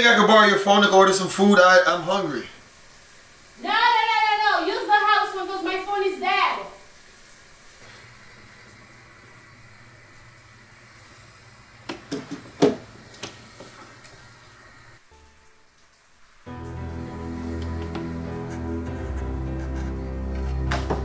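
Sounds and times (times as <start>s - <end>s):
faint steady hum and hiss: 0.0s - 18.5s.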